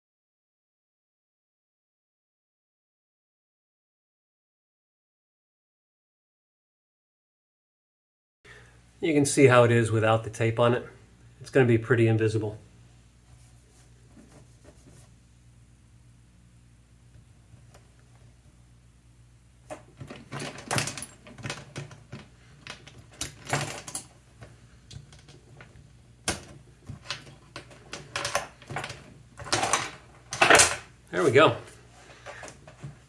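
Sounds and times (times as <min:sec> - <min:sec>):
metal chain rattling and clinking: 0:19.8 - 0:24.2.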